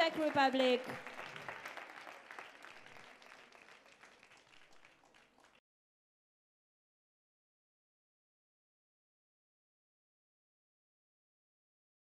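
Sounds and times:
audience applause: 0.0s - 5.6s.

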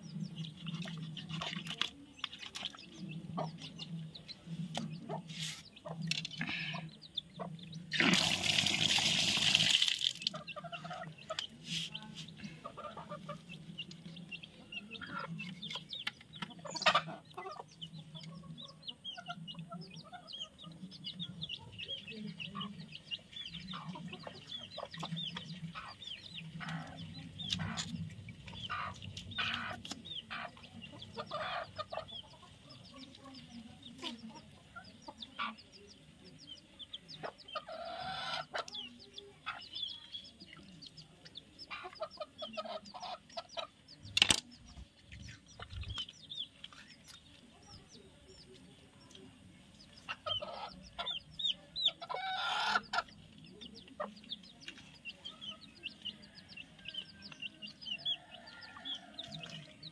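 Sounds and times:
chickens clucking: 0.0s - 59.9s
small birds chirping: 0.0s - 59.9s.

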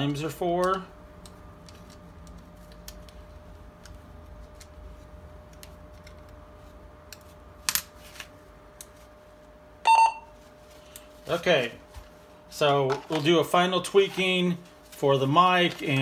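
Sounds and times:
faint steady hum: 0.0s - 16.0s
short electronic beep: 9.9s - 10.3s.

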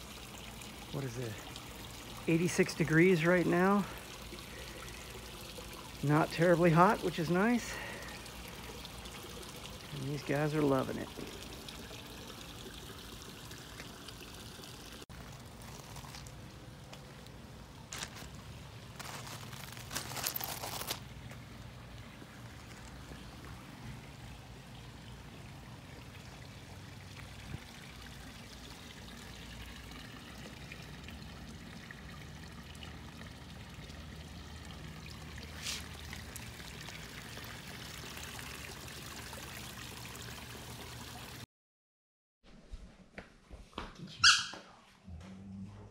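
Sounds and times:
running water trickling: 0.0s - 41.5s.

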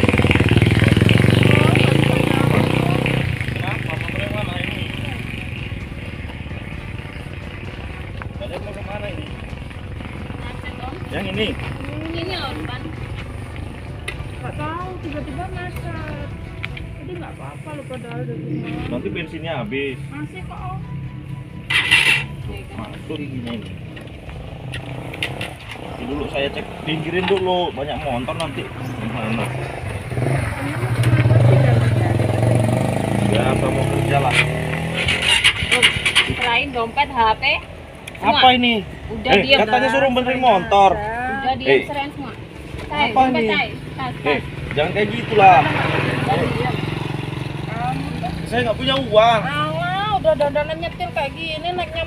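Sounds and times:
indistinct talking: 0.0s - 52.0s
vehicle engine rumbling: 0.0s - 52.0s.

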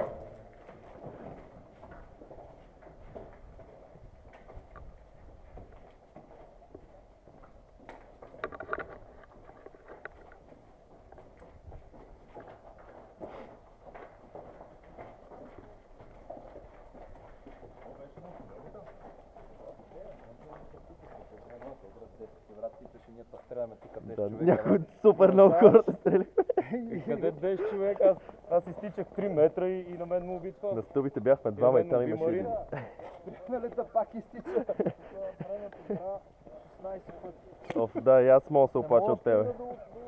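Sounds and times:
footsteps on gritty concrete: 0.0s - 25.5s, 27.0s - 40.0s
gear knocking and rustling: 7.9s - 13.3s.

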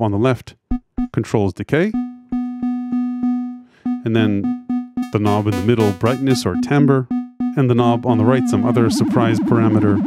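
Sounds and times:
synth note repeating: 2.0s - 8.0s.

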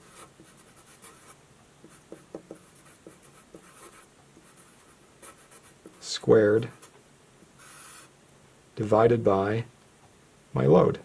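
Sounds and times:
marker writing on paper: 0.0s - 6.1s, 7.6s - 8.1s.

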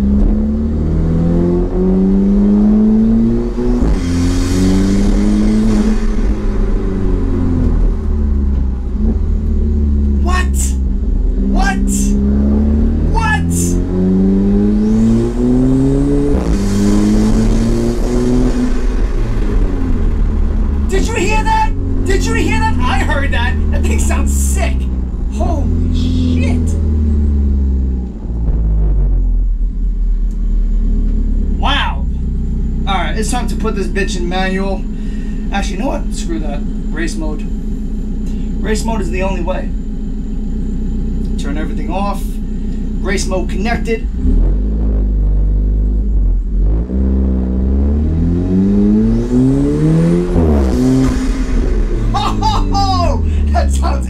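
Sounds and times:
car engine accelerating: 0.0s - 54.0s.

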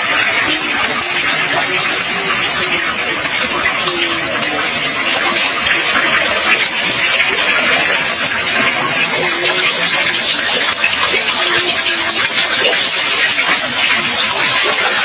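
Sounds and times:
water splashing into pool: 0.0s - 15.0s.

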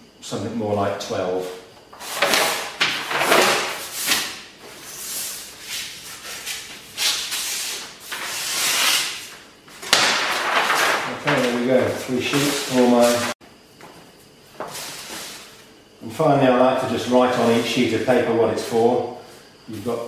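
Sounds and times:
knife slitting paper: 4.9s - 9.4s
paper rustling: 5.8s - 13.4s.

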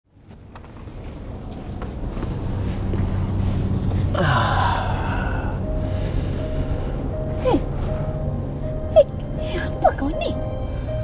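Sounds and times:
car cabin road rumble: 0.1s - 10.4s
person gasping: 4.1s - 7.7s.

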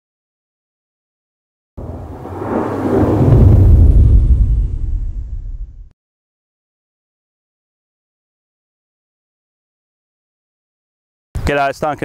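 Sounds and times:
whoosh and deep rumble: 1.8s - 5.9s.

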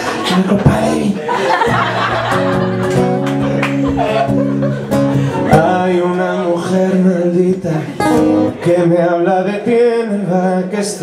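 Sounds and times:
man singing: 0.0s - 1.4s, 5.1s - 11.0s
acoustic guitar strummed: 2.1s - 11.0s.

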